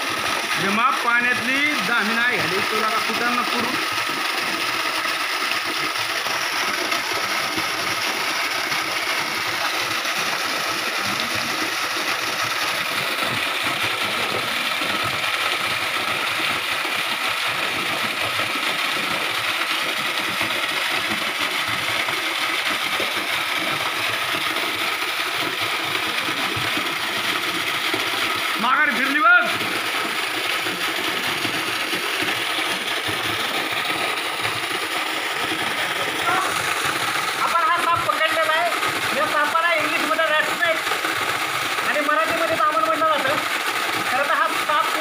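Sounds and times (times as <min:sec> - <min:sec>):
waterfall rushing into pool: 0:00.0 - 0:45.0.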